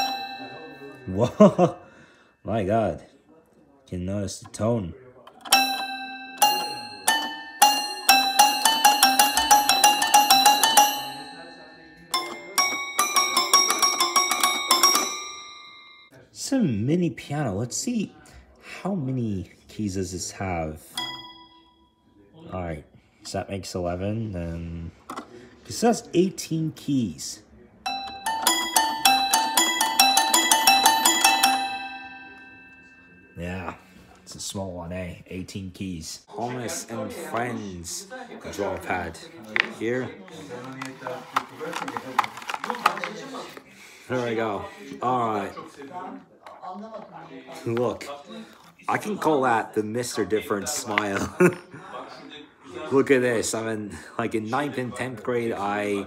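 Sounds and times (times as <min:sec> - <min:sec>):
toy piano notes: 0:00.0 - 0:01.2, 0:05.3 - 0:16.1, 0:20.9 - 0:21.9, 0:27.9 - 0:33.4.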